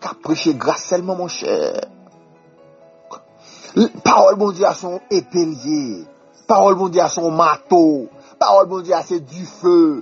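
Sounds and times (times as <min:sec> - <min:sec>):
man preaching: 0:00.0 - 0:02.0, 0:03.1 - 0:10.0
soft held chord music: 0:00.0 - 0:10.0.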